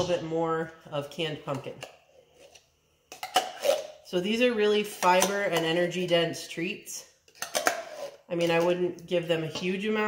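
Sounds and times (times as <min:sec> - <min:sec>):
metal spoon scraping in tin can: 0:03.2 - 0:04.1, 0:07.3 - 0:08.8.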